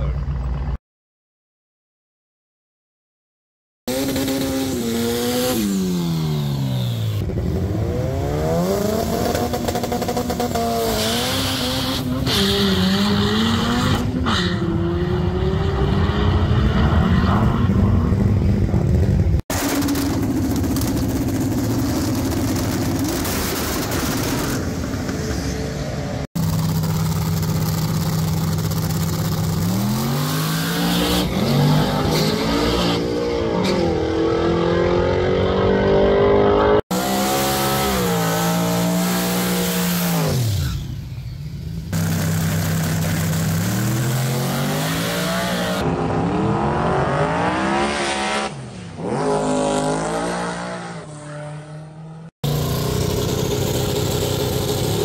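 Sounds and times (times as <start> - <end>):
drag car engines accelerating: 3.9 - 55.0.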